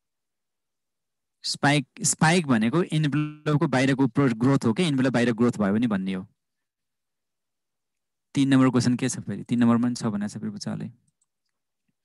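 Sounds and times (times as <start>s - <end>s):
man lecturing: 1.4s - 6.3s, 8.4s - 11.0s.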